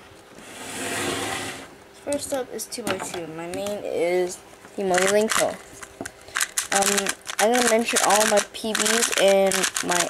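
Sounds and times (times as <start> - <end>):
plastic cubes rustling: 4.8 - 10.0.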